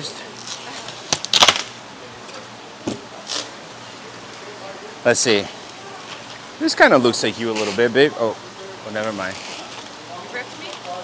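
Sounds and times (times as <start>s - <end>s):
foam scraping and squeaking: 9.1s - 9.8s.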